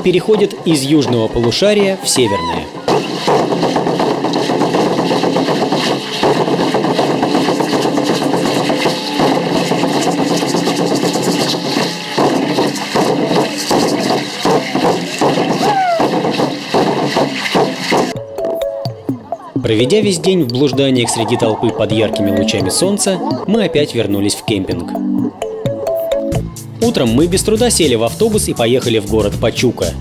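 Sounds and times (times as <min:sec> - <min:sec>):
crowd voices: 0:00.0 - 0:27.0
dense drumming: 0:02.4 - 0:18.2.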